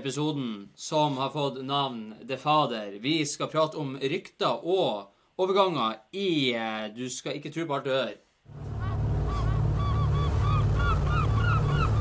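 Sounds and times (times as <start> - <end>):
steady low rumble: 8.5 - 12.0.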